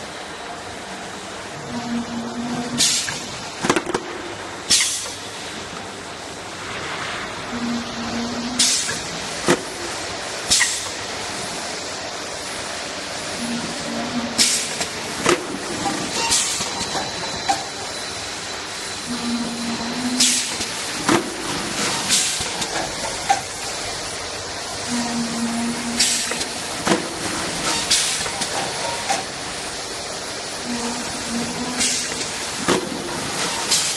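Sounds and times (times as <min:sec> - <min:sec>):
sharp clack with air hiss: 0:02.8 - 0:05.5, 0:08.6 - 0:11.4, 0:14.4 - 0:17.8, 0:20.1 - 0:23.8, 0:25.9 - 0:29.7, 0:31.7 - 0:33.9
filling machine running: 0:07.2 - 0:33.9
compressed air hiss: 0:08.6 - 0:09.1.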